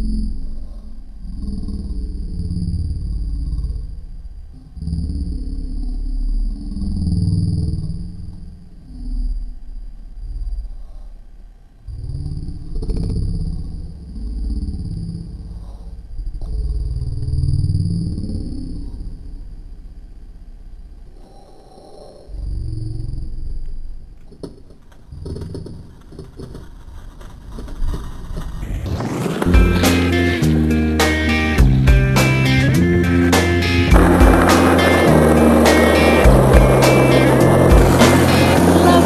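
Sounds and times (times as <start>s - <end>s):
skateboard clacks: 24.4s - 30.4s, 33.4s - 39.0s
skateboard wheels rolling on paving: 24.4s - 31.6s, 32.2s - 39.0s
guitar music: 29.4s - 39.0s.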